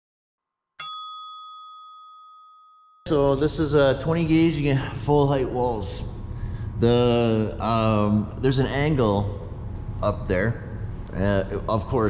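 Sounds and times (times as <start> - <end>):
notification bell ding: 0.8 - 3.1.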